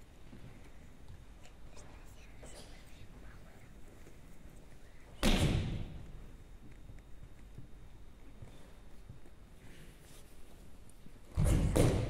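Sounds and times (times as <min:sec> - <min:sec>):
people whispering: 0:01.4 - 0:05.2.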